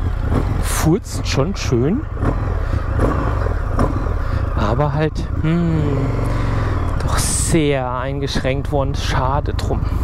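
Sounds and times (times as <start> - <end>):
motorcycle engine burbling: 0.0 - 10.0.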